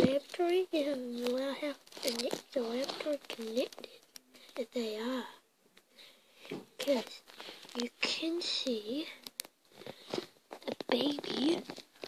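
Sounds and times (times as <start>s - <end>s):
person talking: 0.0s - 5.4s, 6.5s - 9.3s, 10.6s - 11.9s.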